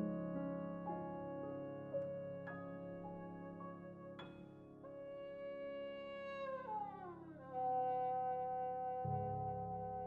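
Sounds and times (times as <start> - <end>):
grand piano accompaniment: 0.0 - 10.0.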